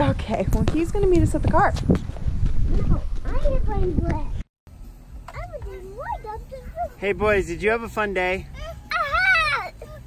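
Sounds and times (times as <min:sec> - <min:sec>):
wind rumble: 0:00.0 - 0:04.5
microphone handling: 0:00.4 - 0:04.4
young child vocalising: 0:08.6 - 0:10.0.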